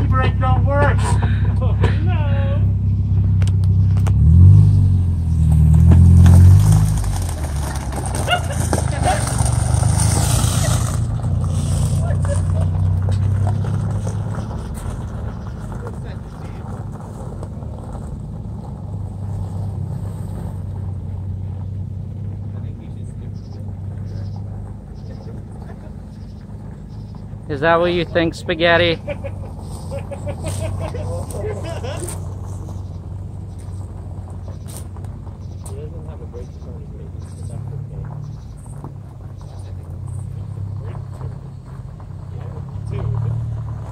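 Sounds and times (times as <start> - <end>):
car engine revving: 0.0 - 43.9
tyres on gravel: 0.0 - 43.9.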